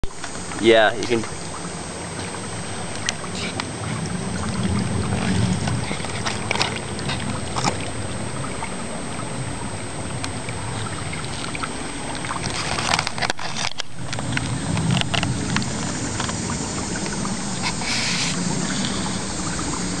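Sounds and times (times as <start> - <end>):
creek water running over rocks: 0.0 - 20.0.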